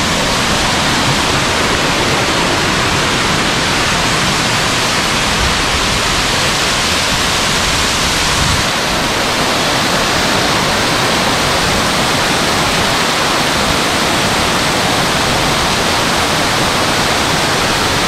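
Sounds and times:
waterfall rushing: 0:00.0 - 0:18.0.

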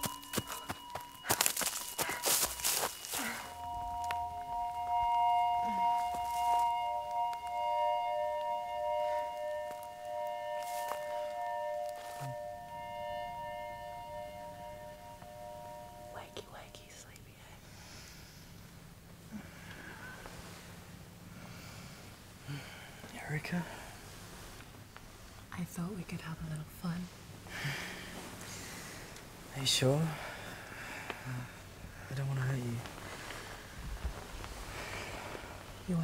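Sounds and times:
footsteps crunching on dry leaves: 0:00.0 - 0:04.2, 0:06.0 - 0:06.8, 0:09.2 - 0:12.5
film score chord: 0:00.0 - 0:17.2.

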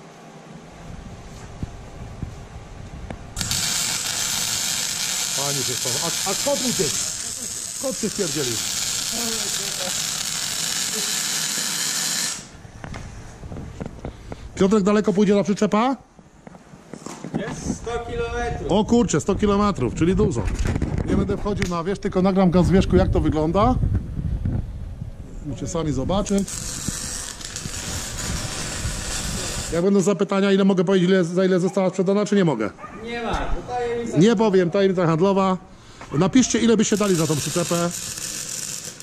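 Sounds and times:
wind on microphone: 0:00.8 - 0:03.4, 0:17.6 - 0:29.8
microphone handling noise: 0:00.9 - 0:03.3, 0:12.6 - 0:14.6, 0:19.4 - 0:21.8, 0:22.8 - 0:25.4
arc welding crackling hiss: 0:03.4 - 0:12.6, 0:26.2 - 0:30.0, 0:36.4 - 0:39.0.

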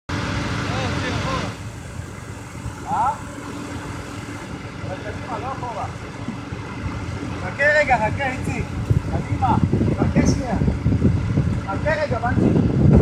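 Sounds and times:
engine low rumble: 0:00.1 - 0:13.0.

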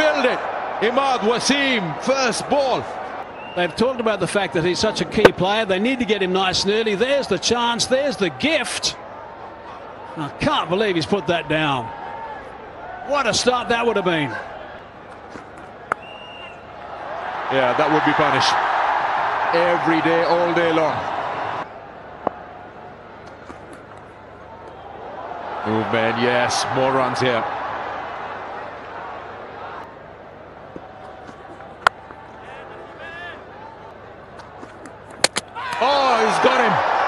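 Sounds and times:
stadium crowd noise: 0:00.0 - 0:37.0
high whistle: 0:16.0 - 0:16.6
cricket bat hitting ball: 0:34.8 - 0:35.8.

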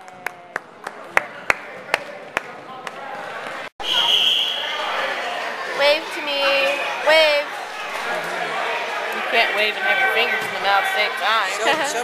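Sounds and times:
handclaps in a rhythm: 0:00.0 - 0:03.0.

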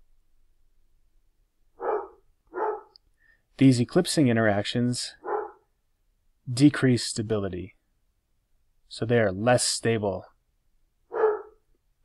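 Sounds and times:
dog barking: 0:01.8 - 0:03.0, 0:05.2 - 0:05.7, 0:11.1 - 0:11.6.

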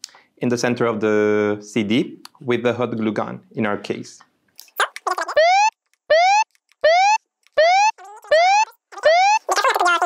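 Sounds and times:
short rising warning tones: 0:05.4 - 0:09.4.

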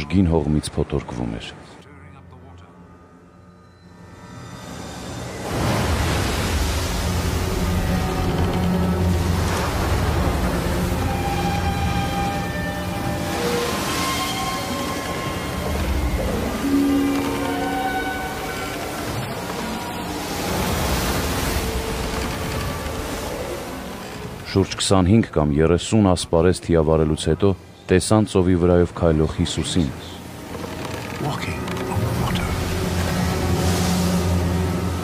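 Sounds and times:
dramatic music of held notes: 0:00.0 - 0:35.0
waves crashing: 0:04.7 - 0:25.0, 0:28.4 - 0:35.0.

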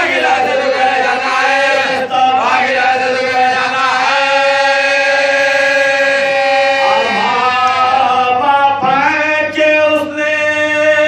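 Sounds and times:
men chanting a mourning elegy: 0:00.0 - 0:11.0.

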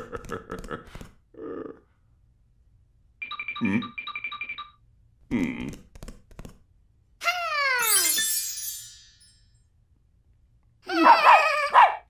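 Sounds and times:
cartoon puppy yipping: 0:10.9 - 0:12.0.

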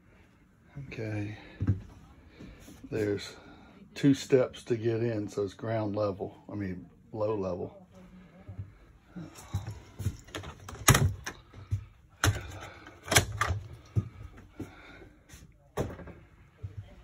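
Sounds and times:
refrigerator doors clicking and thumping: 0:10.2 - 0:11.5, 0:12.2 - 0:13.8.

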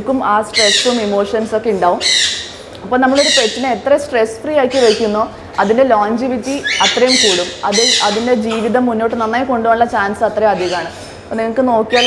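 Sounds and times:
woman talking: 0:00.0 - 0:02.2, 0:02.8 - 0:12.0
parrot squawking: 0:00.5 - 0:01.1, 0:02.0 - 0:03.8, 0:04.7 - 0:05.8, 0:06.6 - 0:08.8, 0:10.5 - 0:11.1.

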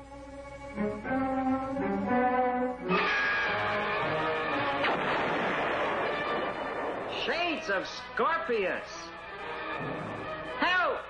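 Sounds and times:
cartoon crash rattling: 0:04.8 - 0:07.7.

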